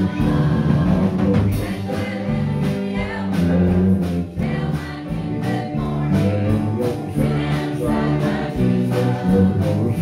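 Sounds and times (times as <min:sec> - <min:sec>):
women singing gospel: 0:00.0 - 0:03.4, 0:04.4 - 0:09.7
acoustic guitar: 0:00.0 - 0:10.0
piano: 0:00.0 - 0:10.0.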